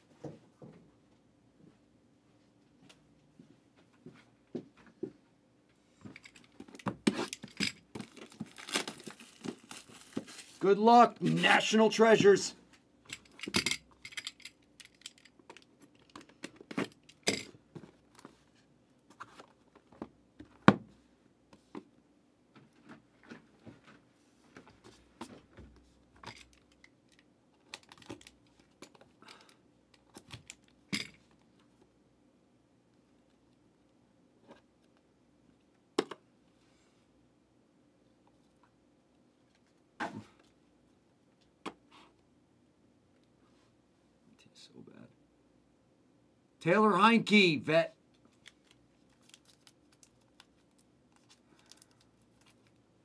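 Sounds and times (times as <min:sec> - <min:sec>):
packaging crinkling and tearing: 0:07.2 - 0:10.6, 0:48.3 - 0:52.8.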